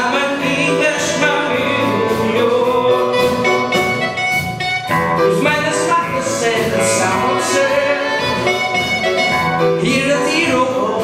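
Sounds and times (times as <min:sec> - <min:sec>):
electric guitar: 0:00.0 - 0:11.0
saxophone: 0:01.0 - 0:05.5, 0:06.8 - 0:09.9.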